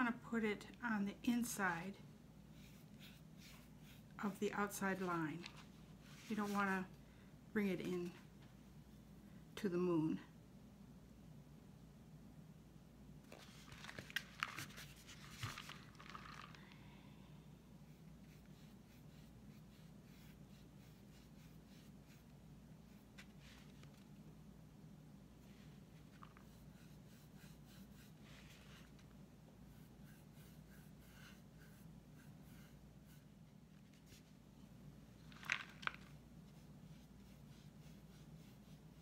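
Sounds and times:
low steady hum: 0.0 - 39.0
paintbrush scratching on gourd shell: 2.4 - 5.4, 17.8 - 24.0, 25.5 - 29.0, 29.6 - 34.4, 36.0 - 39.0.

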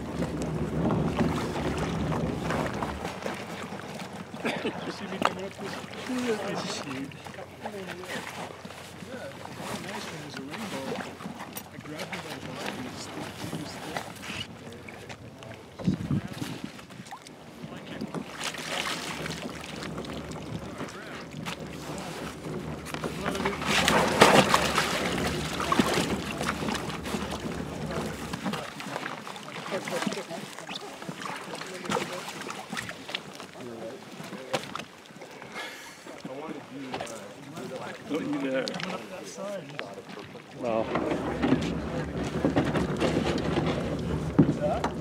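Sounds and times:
water sloshing and splashing: 0.0 - 45.0.

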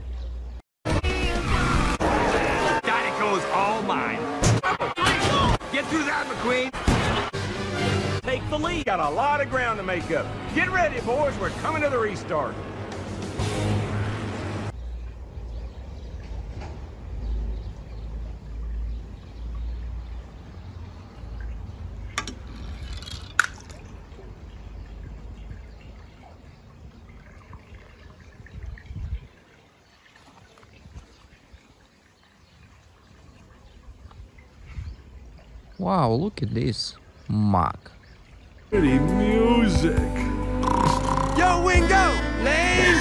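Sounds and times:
pool water trickling: 14.7 - 43.0.

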